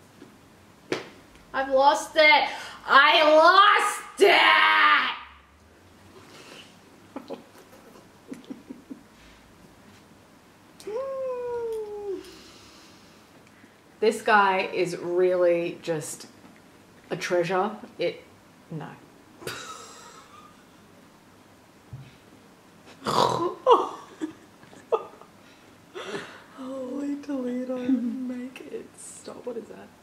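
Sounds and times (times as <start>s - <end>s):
woman laughing breathily: 6.5s - 9.4s.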